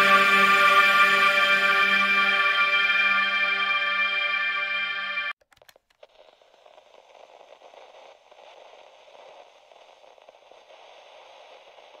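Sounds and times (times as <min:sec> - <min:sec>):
static hiss with light crackling: 0:05.6 - 0:12.0.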